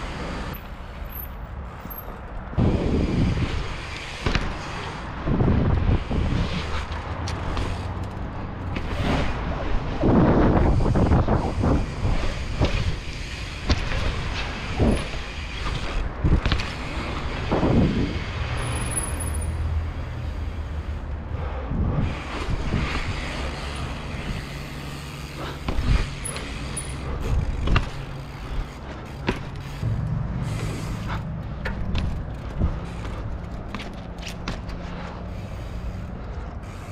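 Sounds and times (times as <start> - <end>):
bicycle tyres rolling on concrete: 0.0 - 36.9
wind buffeting microphone: 2.4 - 7.8, 8.9 - 18.6, 21.2 - 24.8.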